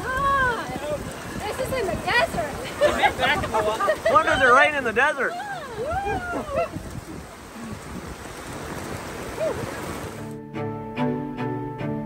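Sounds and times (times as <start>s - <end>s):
wind buffeting microphone: 0.0s - 10.3s
steady rain: 0.0s - 10.4s
burst of laughter: 2.6s - 4.5s.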